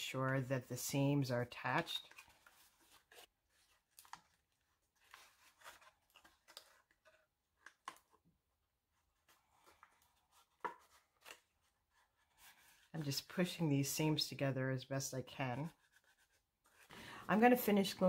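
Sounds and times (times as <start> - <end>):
cardstock rustling and crinkling: 1.4 - 13.6.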